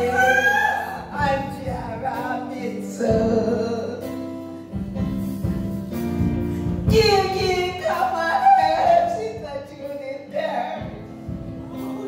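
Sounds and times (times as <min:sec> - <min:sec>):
woman singing into a microphone: 0:00.0 - 0:04.2, 0:06.9 - 0:10.9.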